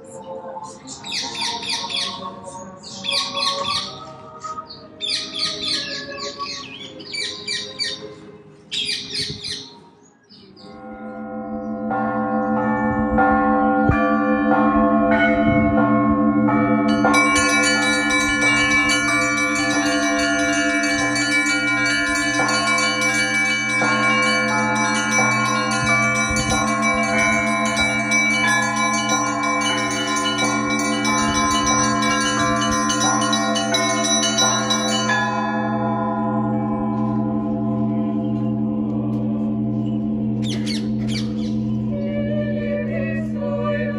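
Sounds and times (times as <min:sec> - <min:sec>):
deep bells ringing: 0:10.6 - 0:42.0
small high bells striking rapidly: 0:16.9 - 0:36.0
birds chirping: 0:39.8 - 0:41.9.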